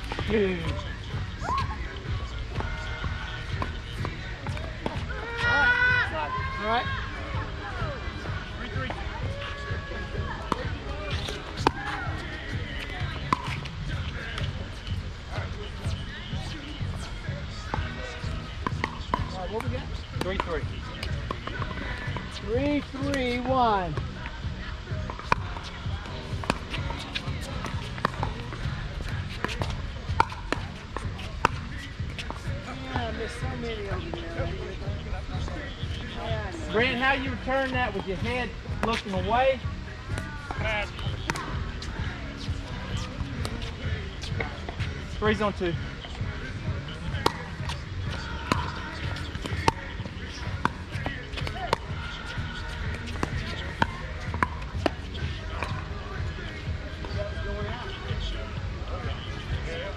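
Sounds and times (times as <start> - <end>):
voices calling out: 0.0 - 59.9.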